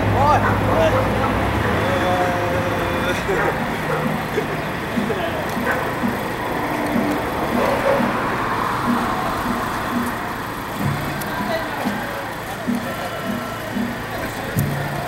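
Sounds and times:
crowd voices: 0.0 - 15.0
rhythmic low drum beat: 0.0 - 15.0
street noise: 0.0 - 15.0.

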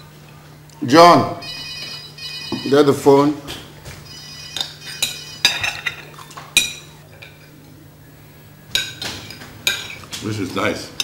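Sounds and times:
low steady hum: 0.0 - 11.0
cutlery clinking against plates: 4.6 - 7.5, 8.7 - 10.2.

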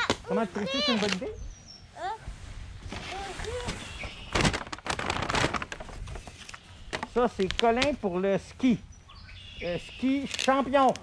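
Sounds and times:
wrapping paper tearing and rustling: 2.9 - 6.6.

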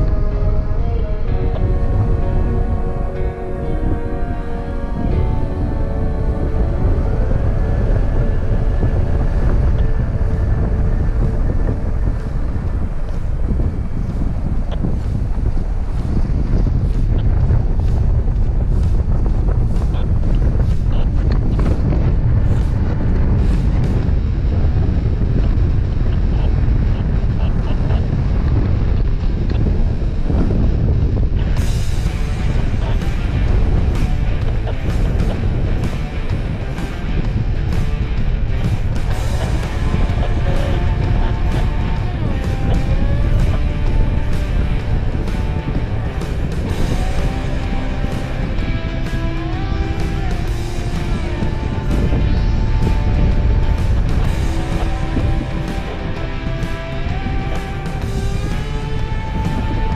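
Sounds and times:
background music: 0.0 - 59.9
wind rumbling on microphone: 0.0 - 59.9.

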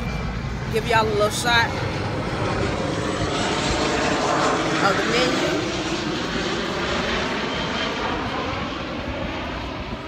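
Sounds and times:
airplane engine rumble: 0.0 - 10.0.

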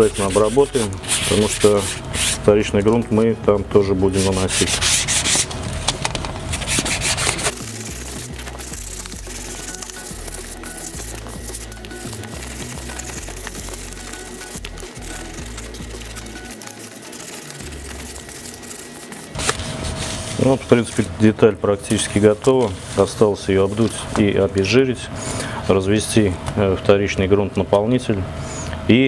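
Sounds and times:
sanding block rubbing on wood: 0.0 - 2.5, 4.0 - 5.5, 6.5 - 14.0.

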